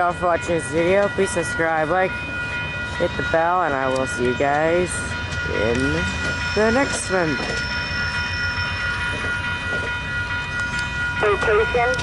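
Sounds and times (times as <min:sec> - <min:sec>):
train wheels clattering on rails: 0:00.0 - 0:12.0.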